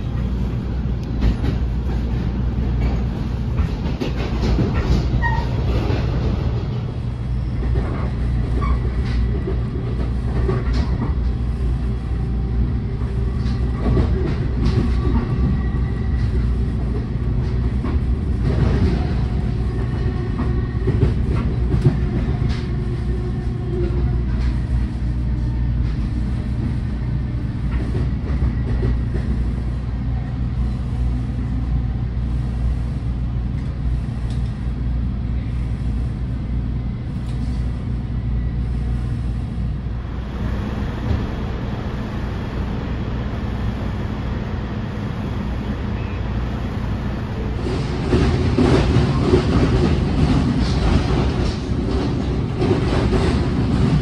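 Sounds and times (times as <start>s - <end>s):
train wheels rumbling on rails: 0.0s - 54.0s.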